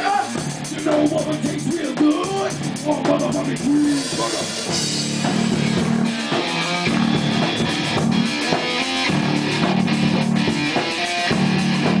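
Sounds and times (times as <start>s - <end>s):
bass guitar: 0.0s - 12.0s
distorted electric guitar riff: 0.0s - 12.0s
drums: 0.0s - 12.0s.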